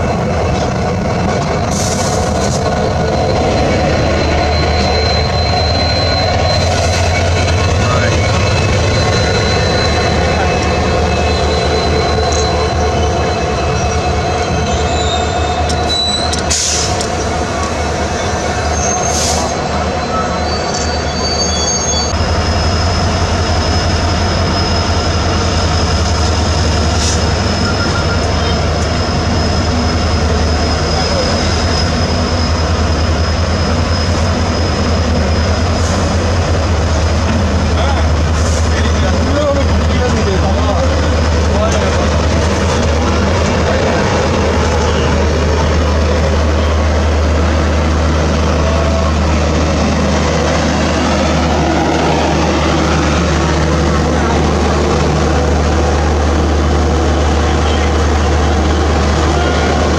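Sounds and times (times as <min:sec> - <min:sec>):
train wheels rumbling on rail: 0:00.0 - 0:59.9
high wheel squeal: 0:01.7 - 0:59.9.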